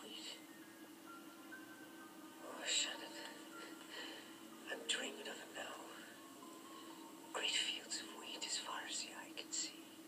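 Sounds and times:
man whispering through speaker: 2.4 - 3.4, 7.4 - 9.8.

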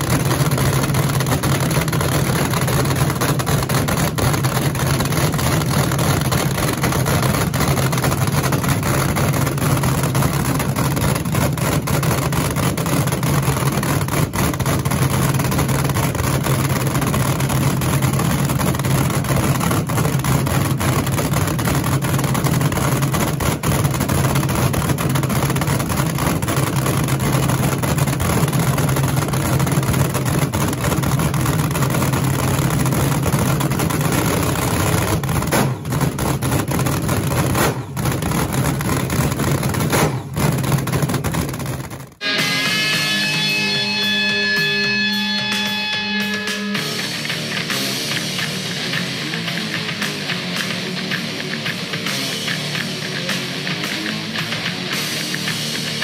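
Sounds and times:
dragster engine loud idle: 0.0 - 56.0.

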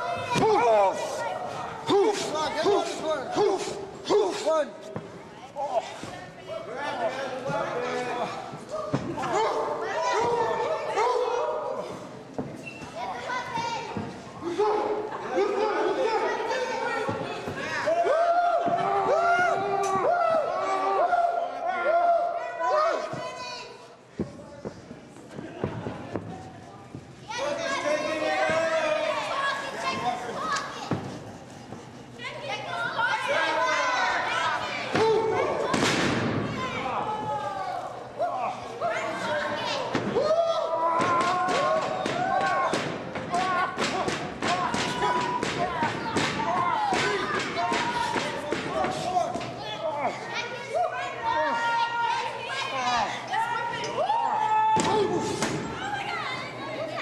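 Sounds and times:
spectators shouting: 32.5 - 50.0.

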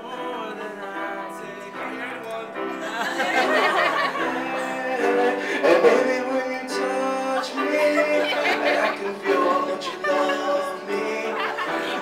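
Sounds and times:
grand piano chords: 0.0 - 12.0.

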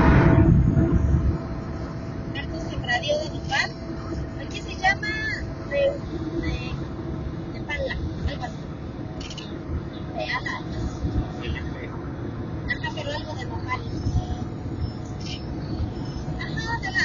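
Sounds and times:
car cabin road and engine rumble: 0.0 - 17.0.

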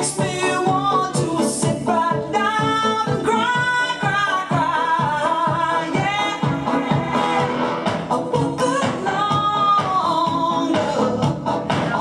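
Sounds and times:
backing track with steady beat: 0.0 - 12.0
woman singing: 0.0 - 12.0.

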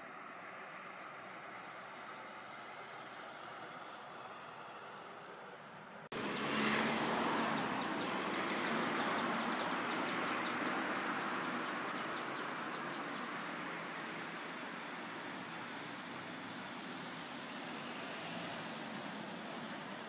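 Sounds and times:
traffic hum: 0.0 - 20.0
car passing: 2.3 - 20.0.

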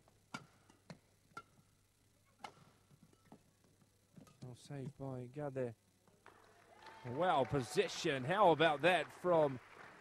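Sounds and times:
rackets striking shuttlecock: 0.3 - 1.7, 2.4 - 3.4.

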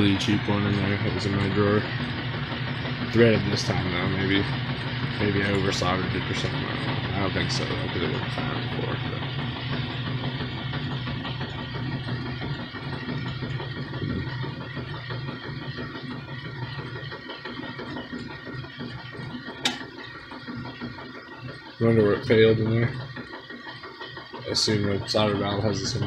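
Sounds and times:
low mechanical hum: 0.0 - 26.0
sharp click: 19.6 - 19.9.

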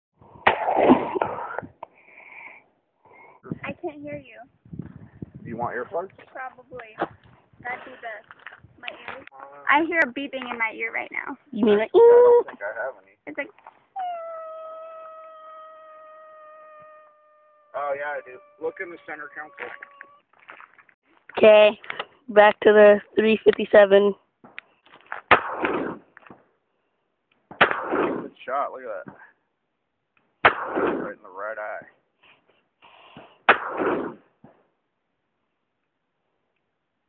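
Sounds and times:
person holding a vocal tone: 14.0 - 20.2
revolver gunshot with echo: 25.3 - 26.0, 27.6 - 28.3, 30.4 - 31.1.

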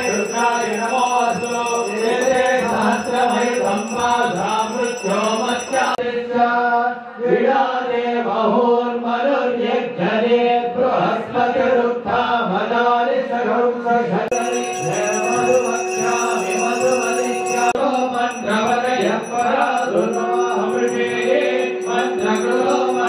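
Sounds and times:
high steady ringing: 0.0 - 6.0, 14.3 - 23.0
melodic mantra chanting: 0.0 - 6.0, 14.3 - 23.0.

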